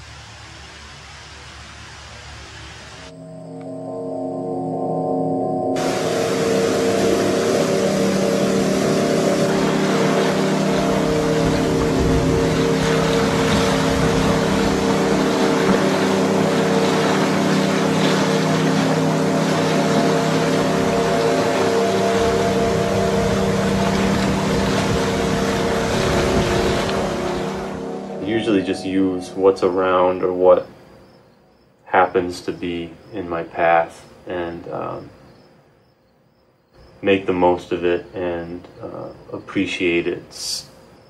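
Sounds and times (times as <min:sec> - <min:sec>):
low drone of held tones: 0:02.1 - 0:35.5
stream rushing over rocks: 0:05.8 - 0:27.8.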